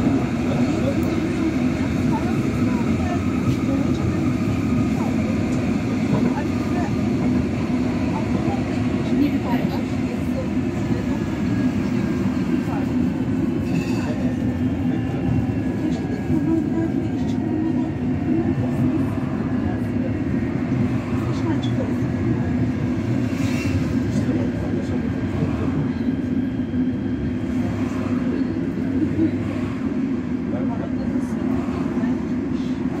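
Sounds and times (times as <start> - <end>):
train wheels rumbling: 0.0 - 33.0.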